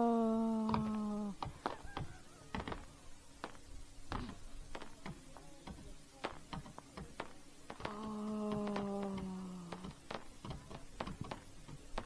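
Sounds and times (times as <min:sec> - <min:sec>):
fireworks popping and crackling: 0:00.6 - 0:12.0.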